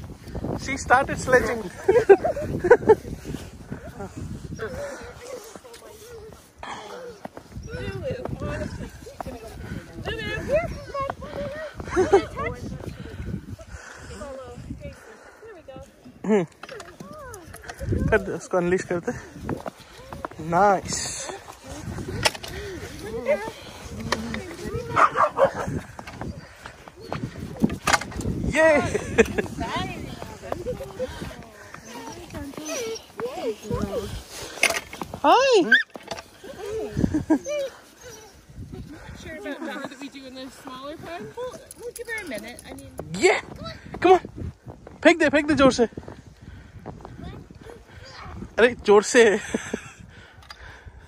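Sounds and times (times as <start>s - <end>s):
dog barking: 24.9s - 25.8s.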